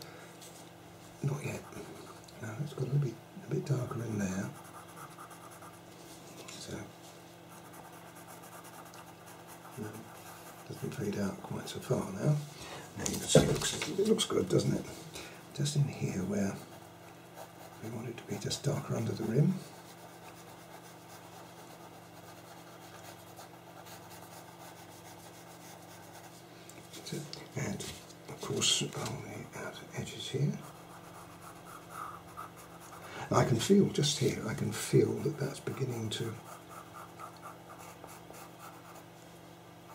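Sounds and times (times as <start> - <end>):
low electrical hum: 0.0 - 39.9
pencil scratching on paper: 4.5 - 5.8, 7.5 - 11.0, 16.7 - 18.5, 19.1 - 26.4, 30.5 - 33.1, 35.2 - 39.0.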